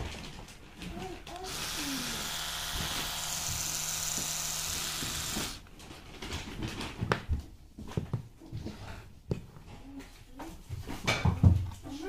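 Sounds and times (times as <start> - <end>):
electric toothbrush motor buzzing: 1.4 - 5.6.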